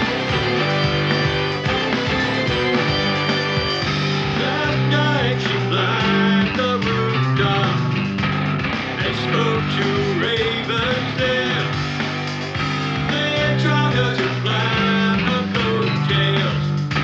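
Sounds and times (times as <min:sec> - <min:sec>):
bass notes: 0:00.0 - 0:17.0
rock music with guitars: 0:00.0 - 0:17.0
sliding lead guitar line: 0:00.0 - 0:17.0.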